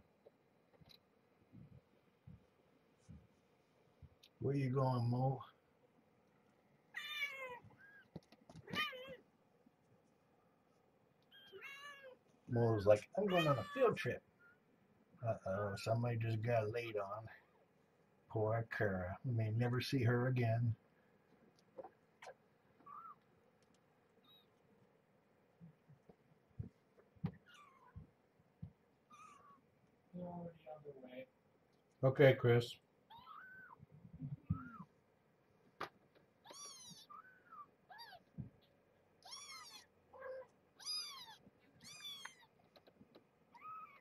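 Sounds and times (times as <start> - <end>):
soft thumps of movement: 0.2 - 3.4
kittens mewing: 7.0 - 9.2, 11.3 - 12.2, 13.2 - 14.1, 21.8 - 23.3, 27.3 - 28.2, 29.1 - 29.7, 33.1 - 34.9, 36.4 - 38.4, 39.2 - 42.6, 43.5 - 44.0.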